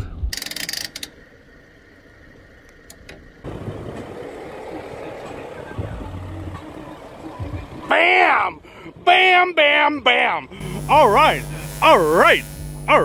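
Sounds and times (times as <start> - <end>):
car engine running: 1.2 - 9.1, 10.6 - 13.0.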